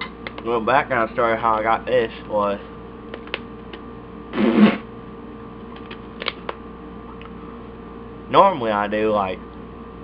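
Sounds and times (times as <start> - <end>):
steady electrical hum: 0.0 - 10.0.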